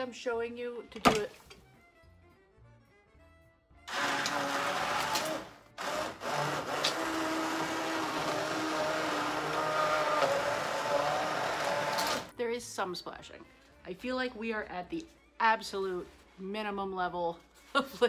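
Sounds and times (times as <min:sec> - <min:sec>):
immersion blender running: 0:03.9 - 0:12.3.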